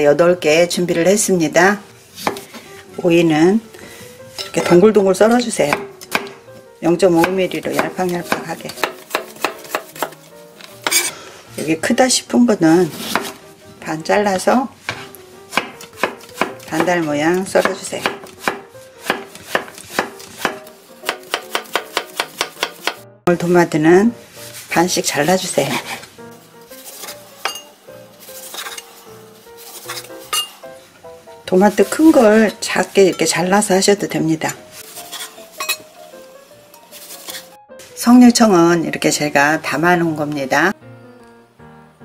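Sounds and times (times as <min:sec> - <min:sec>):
knife chopping on wooden board: 0:02.2 - 0:02.5, 0:05.7 - 0:06.4, 0:07.2 - 0:10.2, 0:13.0 - 0:13.4, 0:14.9 - 0:23.0.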